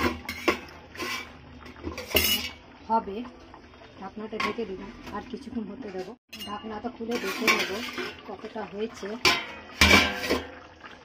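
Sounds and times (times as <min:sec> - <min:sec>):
metal utensils clanking on cookware: 0:00.0 - 0:02.6, 0:04.3 - 0:05.2, 0:05.9 - 0:08.3, 0:09.0 - 0:10.6.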